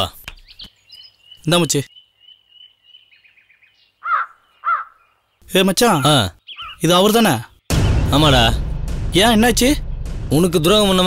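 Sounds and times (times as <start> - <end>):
small birds chirping: 0.0 - 8.2
crow cawing: 4.0 - 5.2.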